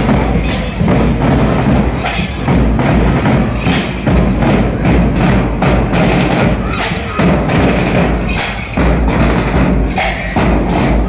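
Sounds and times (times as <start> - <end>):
hand cymbals: 0.0 - 11.0
marching drums: 0.0 - 11.0.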